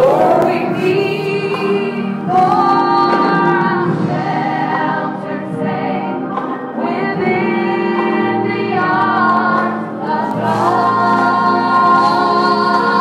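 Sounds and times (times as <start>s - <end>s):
gospel choir singing: 0.0s - 13.0s.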